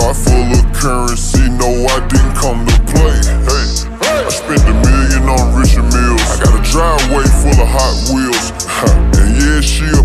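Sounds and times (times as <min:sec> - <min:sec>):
deep drawn-out vocals: 0:00.0 - 0:10.0
slowed hip-hop beat with heavy bass: 0:00.0 - 0:10.0.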